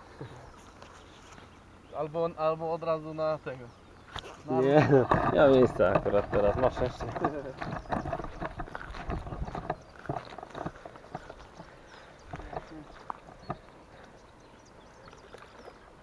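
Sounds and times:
flip-flop footsteps on stony grass: 5.8 - 14.2.

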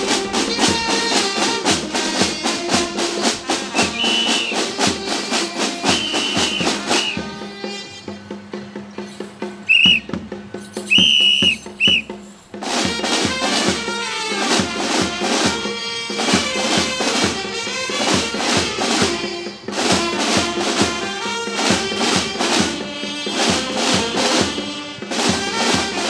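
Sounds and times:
snare drums marching cadence: 0.0 - 26.0
whistle blasts: 3.7 - 4.9, 5.8 - 8.2, 9.6 - 12.2.

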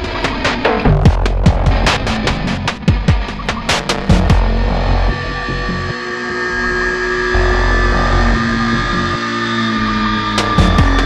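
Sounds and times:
background music with heavy bass: 0.0 - 11.0.

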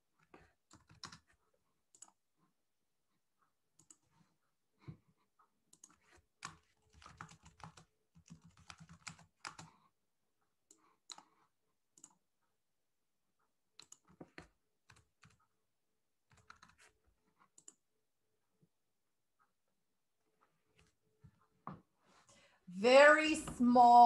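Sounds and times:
computer keyboard typing: 0.2 - 2.2, 3.8 - 4.3, 5.7 - 9.8, 10.7 - 12.2, 13.8 - 15.6, 16.2 - 17.8.

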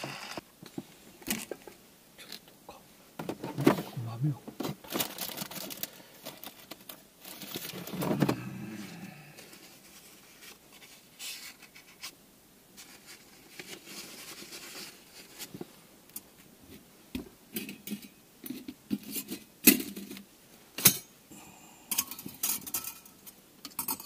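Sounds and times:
low voice: 3.8 - 4.4
hands rustling fabric and paper: 4.8 - 15.8.

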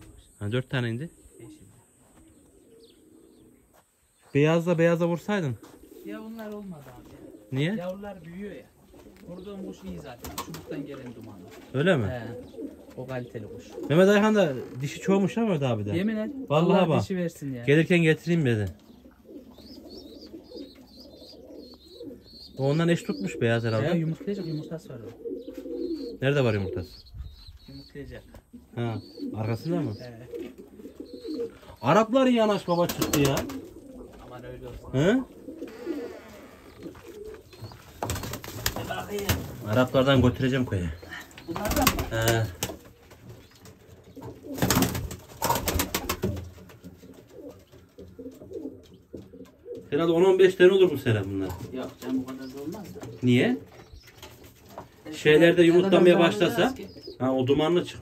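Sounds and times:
pigeons cooing: 0.0 - 58.0.

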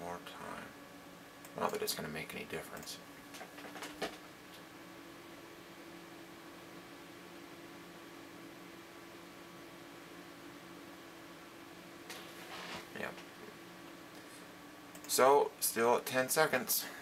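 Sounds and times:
computer cooling fans humming: 0.0 - 17.0.

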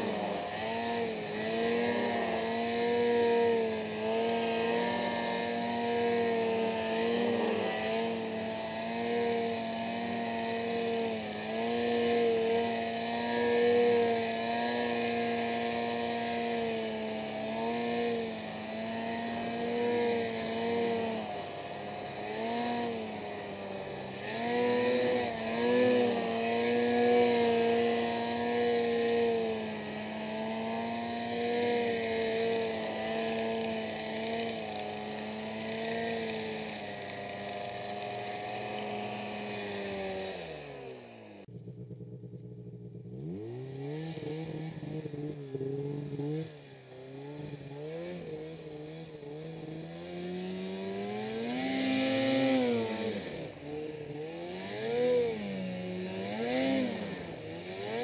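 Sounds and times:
snowmobile engine revving: 0.0 - 58.0.

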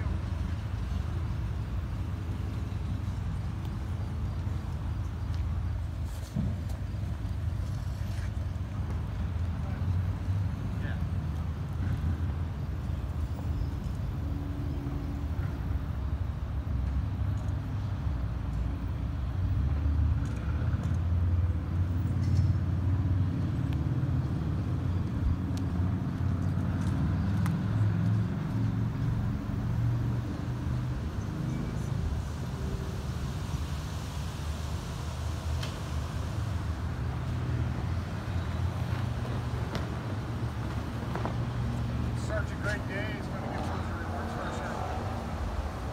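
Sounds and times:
road traffic rumble: 0.0 - 45.9.

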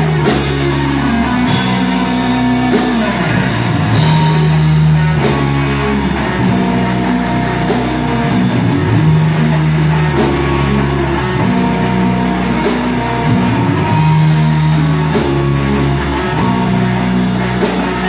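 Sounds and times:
distorted electric guitars and bass: 0.0 - 18.0
drum kit with cymbal hits: 0.0 - 18.0.

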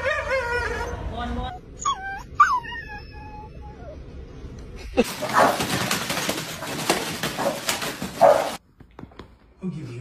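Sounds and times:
paper rustling: 5.0 - 8.6
puppies barking: 5.0 - 8.6.

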